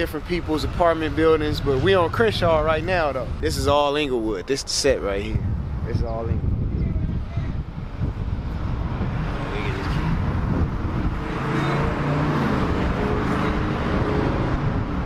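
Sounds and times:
rumble of passing vehicles: 0.0 - 15.0
vehicle passing by: 7.5 - 15.0.

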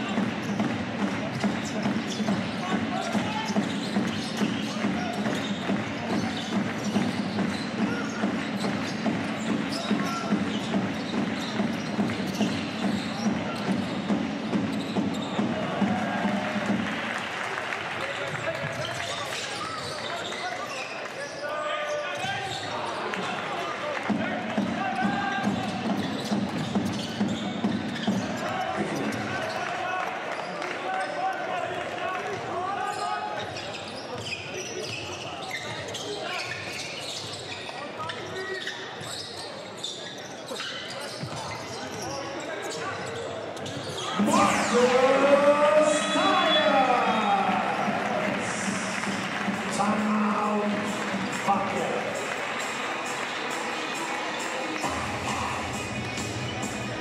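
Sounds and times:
sneaker squeaks: 0.0 - 16.0, 18.1 - 23.4, 24.8 - 31.2, 32.7 - 47.9
arena background noise: 42.4 - 57.0
players calling out: 43.9 - 57.0.

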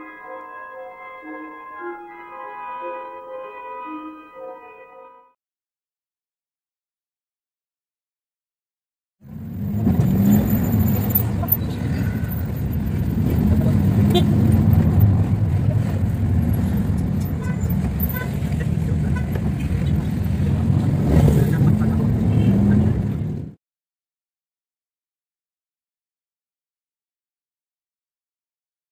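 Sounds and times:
vehicle engines rumbling: 9.2 - 23.6.

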